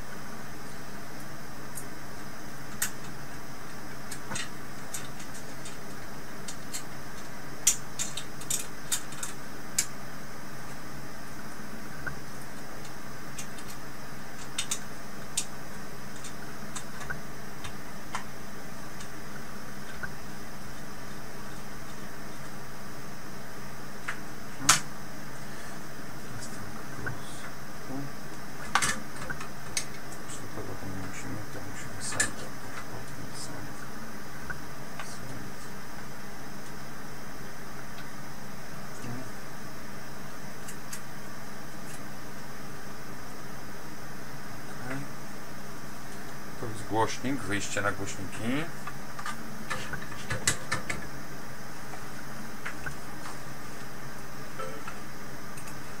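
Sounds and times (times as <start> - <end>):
steady background hiss: 0.0 - 56.0.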